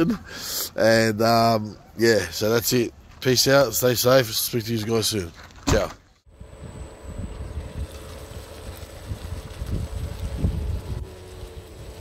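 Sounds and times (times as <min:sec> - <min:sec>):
wind buffeting microphone: 0:06.3 - 0:12.0.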